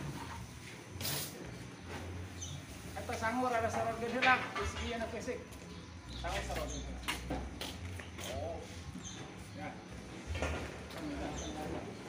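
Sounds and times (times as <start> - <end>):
distant people talking: 3.0 - 12.0.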